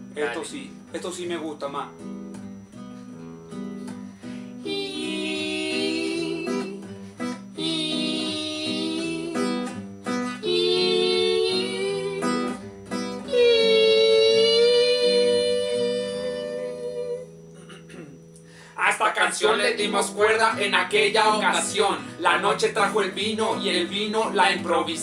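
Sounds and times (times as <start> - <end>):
classical guitars playing chords: 0.0 - 18.6, 19.2 - 25.0.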